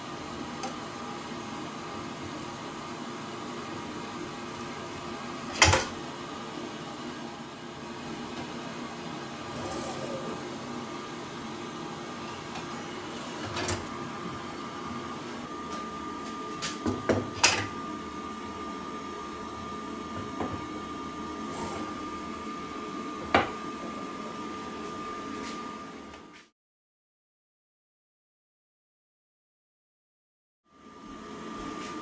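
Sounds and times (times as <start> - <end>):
steady mechanical hum: 0.0 - 26.5, 30.7 - 32.0.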